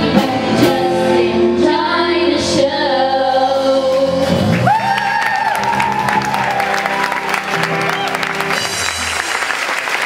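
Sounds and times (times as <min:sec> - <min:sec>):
audience applause: 0:04.4 - 0:10.0.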